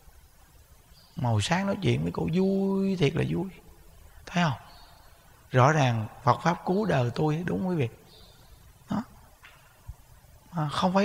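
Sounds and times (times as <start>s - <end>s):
man speaking: 1.2s - 4.8s, 5.5s - 8.0s, 8.9s - 9.2s, 10.5s - 11.0s.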